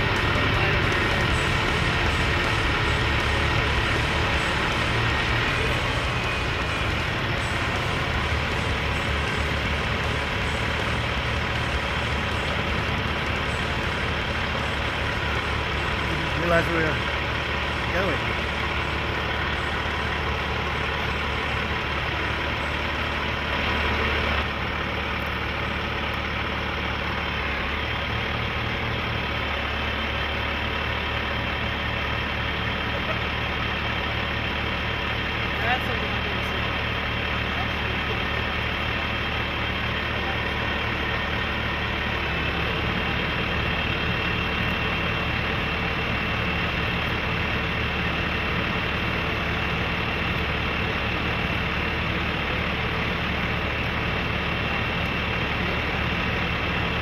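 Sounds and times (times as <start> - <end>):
diesel engine running: 0.0 - 57.0.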